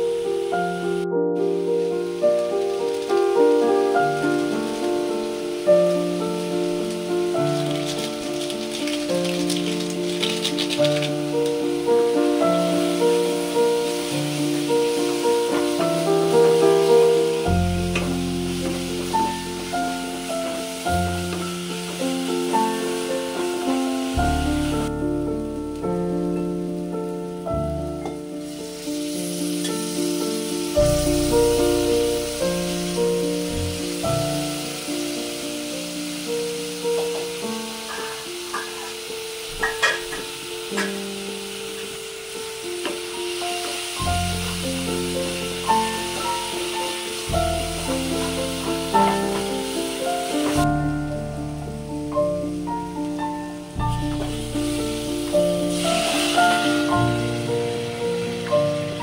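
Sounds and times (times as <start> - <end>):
background piano music: 0.0 - 59.0
food sizzling in a pot: 0.0 - 59.0.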